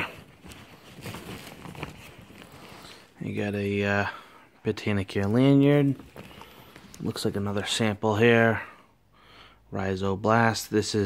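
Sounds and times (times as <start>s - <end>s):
plastic bag rustling: 0.0s - 7.8s.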